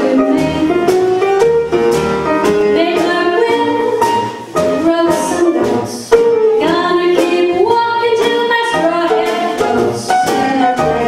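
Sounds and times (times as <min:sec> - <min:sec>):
woman singing jazz: 0:00.0 - 0:01.3, 0:02.4 - 0:11.0
jazz band playing: 0:00.0 - 0:11.0.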